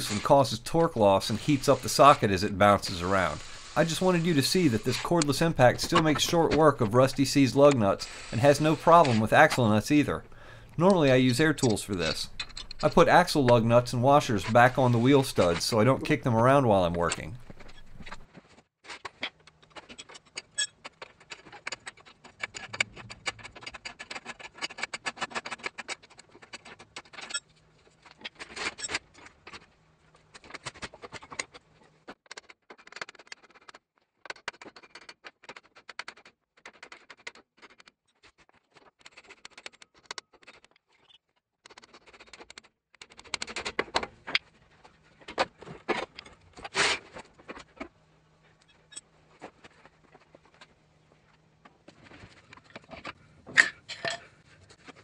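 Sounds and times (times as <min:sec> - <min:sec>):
metallic scraping: 0:00.0 - 0:18.3.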